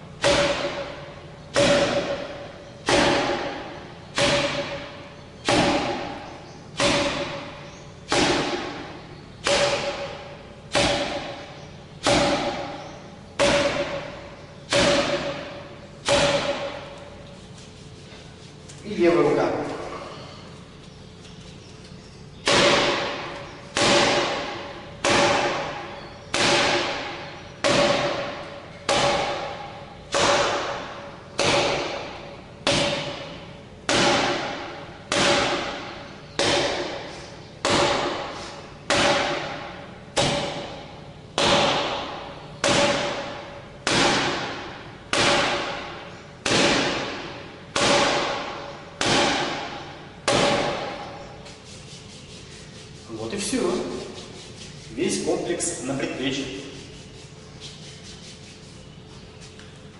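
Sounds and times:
forearm thuds on striking post: 0.2s - 6.2s, 8.1s - 12.8s, 13.4s - 16.9s, 22.4s - 38.3s, 38.9s - 51.0s.

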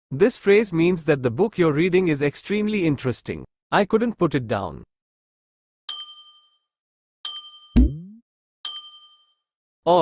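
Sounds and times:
bright bell-like dings: 5.9s - 6.7s, 7.3s - 7.8s, 8.6s - 9.5s
low pop with upward slide: 7.8s - 8.2s.

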